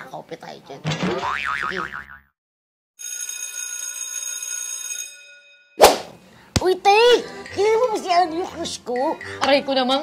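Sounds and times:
high-pitched ringing bell: 3.0 - 5.8.

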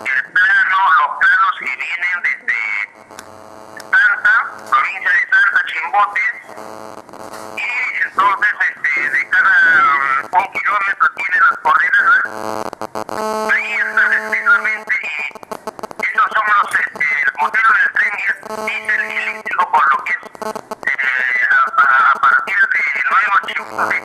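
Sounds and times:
man speaking: 0.0 - 3.0, 3.8 - 6.6, 7.6 - 12.4, 13.5 - 15.4, 16.0 - 20.3, 20.9 - 24.0
steady hum: 0.0 - 24.0.

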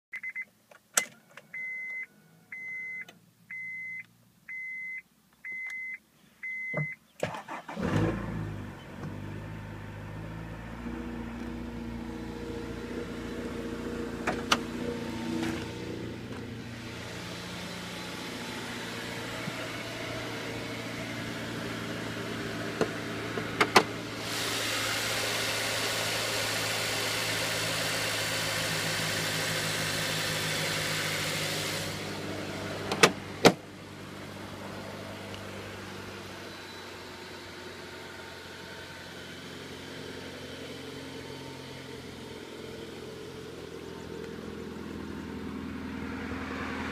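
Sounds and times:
car dash chime beeping: 0.2 - 7.0
car engine starting and idling: 5.5 - 46.9.

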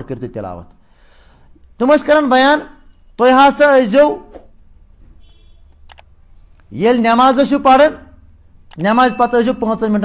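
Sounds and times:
man speaking: 0.0 - 0.8, 1.8 - 4.4, 6.7 - 10.0
sharp clicks: 5.7 - 6.1, 8.7 - 8.9.

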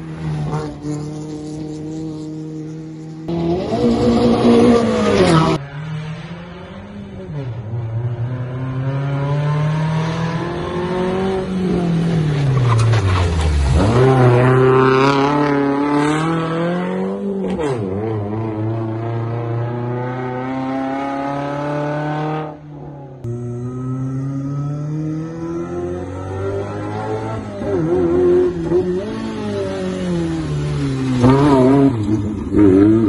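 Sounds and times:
rally car engine revving past: 13.6 - 33.0.

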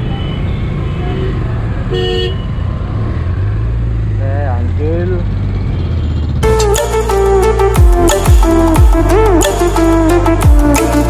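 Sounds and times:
vehicle horn honking: 0.0 - 2.5
street traffic: 0.0 - 11.0.

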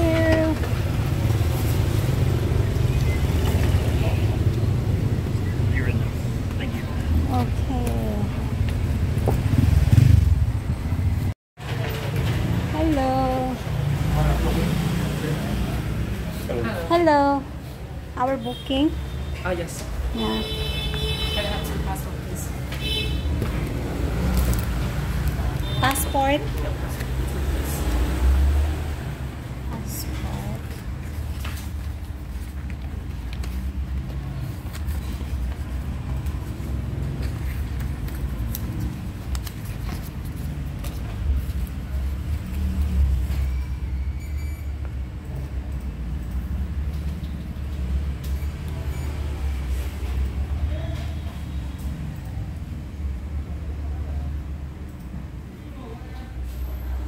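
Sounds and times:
passing vehicles engine rumble: 0.0 - 16.9.

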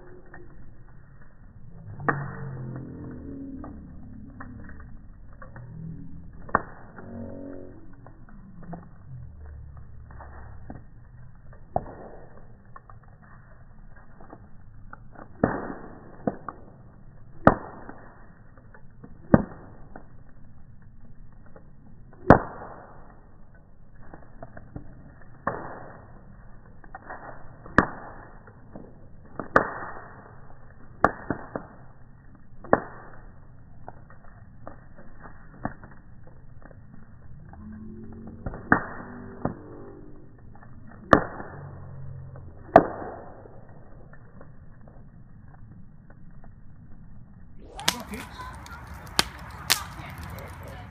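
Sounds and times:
bonfire pops: 0.0 - 50.9
low rumble of burning: 0.0 - 50.9.

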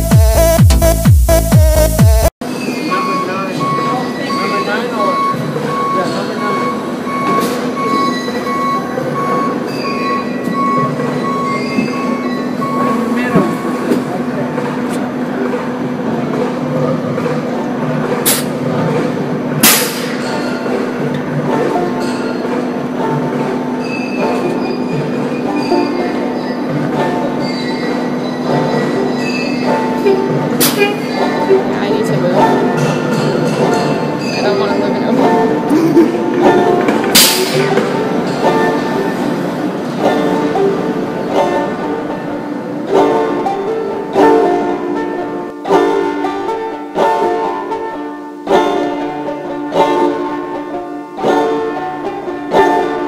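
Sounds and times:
electric streetcar humming: 2.4 - 53.0.

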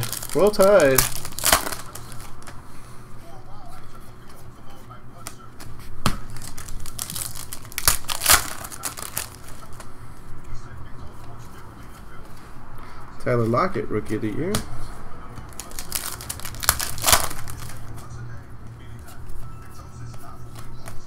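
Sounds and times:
foil wrapper crinkling and tearing: 0.0 - 2.5, 6.3 - 9.9, 15.5 - 18.0.

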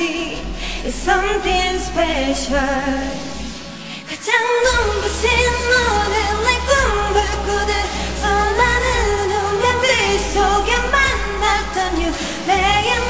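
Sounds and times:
faint low bass: 0.0 - 3.8, 4.7 - 13.0
woman singing: 0.0 - 13.0.

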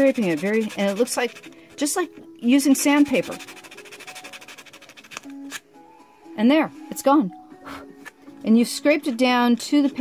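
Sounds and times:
knife blade scraping paper: 0.0 - 1.5, 3.0 - 5.6.

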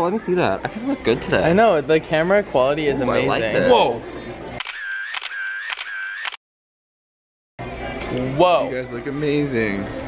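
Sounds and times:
camera shutter clicks: 4.6 - 6.4.

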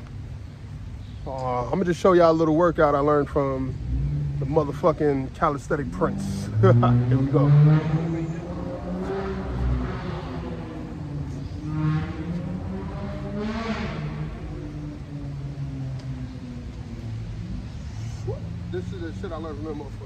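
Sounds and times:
traffic rumble on wet road: 0.0 - 20.0
vehicles passing: 0.0 - 20.0.

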